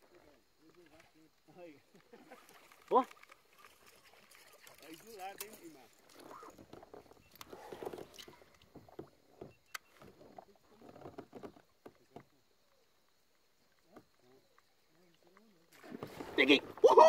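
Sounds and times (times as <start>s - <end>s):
water noise: 0.0s - 17.0s.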